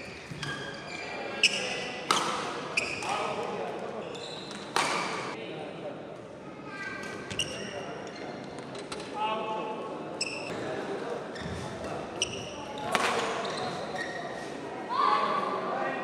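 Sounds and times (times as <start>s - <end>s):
shoes squeaking on court: 0.0s - 3.4s, 4.0s - 5.4s, 7.3s - 8.9s, 10.2s - 10.6s, 11.3s - 14.6s
murmur of voices: 0.8s - 16.0s.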